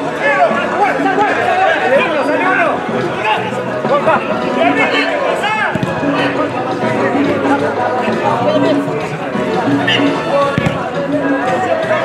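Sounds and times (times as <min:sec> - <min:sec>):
men shouting: 0:00.0 - 0:12.0.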